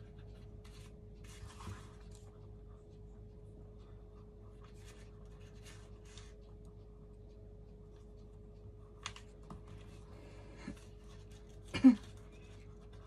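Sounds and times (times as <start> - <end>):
faint steady hum: 0.0 - 13.0
paper rustling and rubbing: 0.3 - 2.2.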